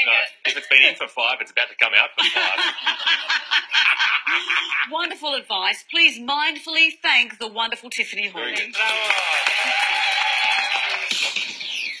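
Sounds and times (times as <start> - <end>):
audience laughter: 2.2 - 4.9
audience applause: 8.7 - 11.5.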